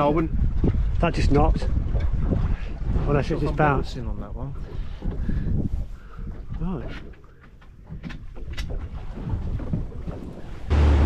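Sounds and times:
wind buffeting microphone: 0.0 - 7.1.

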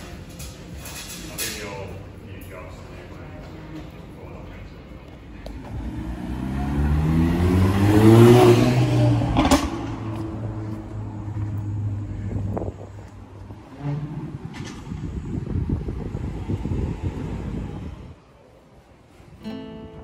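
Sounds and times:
car engine accelerating: 5.4 - 18.2.

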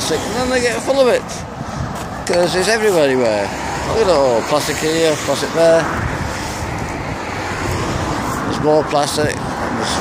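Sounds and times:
road traffic hiss: 0.0 - 10.0
wind buffeting microphone: 0.0 - 10.0.

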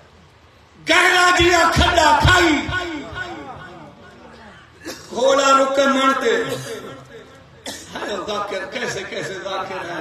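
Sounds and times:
man's voice at microphone: 0.8 - 4.1, 4.9 - 10.0.

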